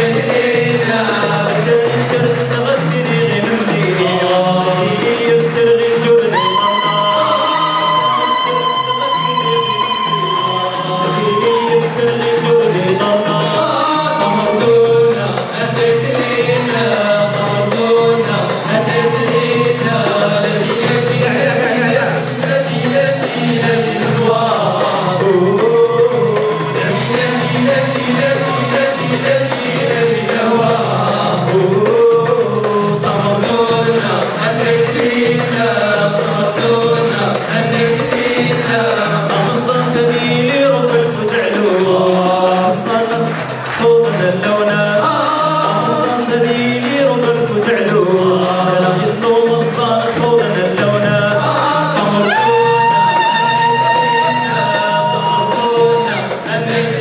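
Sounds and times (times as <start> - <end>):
male chorus singing: 0.0 - 57.0
rhythmic accompaniment: 0.0 - 57.0.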